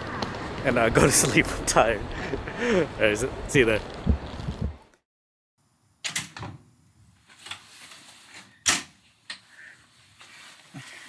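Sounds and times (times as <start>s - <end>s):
door opening and closing: 6.0s - 6.6s.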